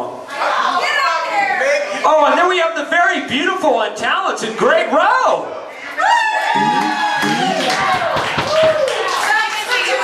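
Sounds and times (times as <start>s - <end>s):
voices calling out: 6.3s - 8.2s
audience clapping: 6.6s - 10.0s.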